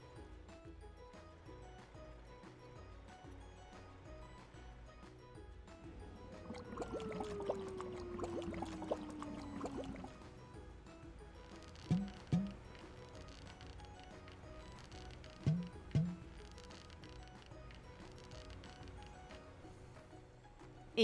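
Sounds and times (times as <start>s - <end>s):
quiet background music: 0.0s - 21.0s
short sharp thumps: 11.8s - 12.6s, 15.4s - 16.4s.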